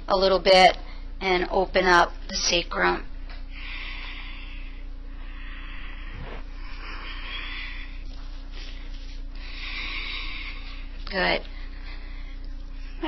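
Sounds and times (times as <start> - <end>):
low electrical hum: 0.0 - 13.0
soft hissing breaths: 3.5 - 13.0.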